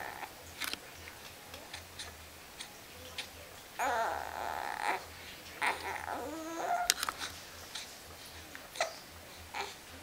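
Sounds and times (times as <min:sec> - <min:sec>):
baby whimpering and fussing: 0:03.8 - 0:08.0, 0:08.7 - 0:09.8.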